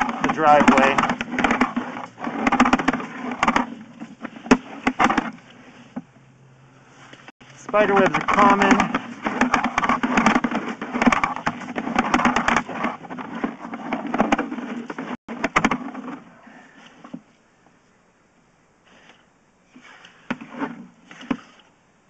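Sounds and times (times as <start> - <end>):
cable rattling and scraping: 0.0 - 6.2, 6.9 - 17.2.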